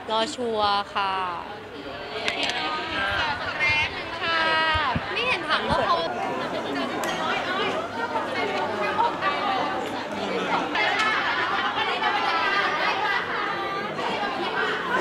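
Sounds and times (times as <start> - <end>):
crowd chatter in a large hall: 0.0 - 15.0.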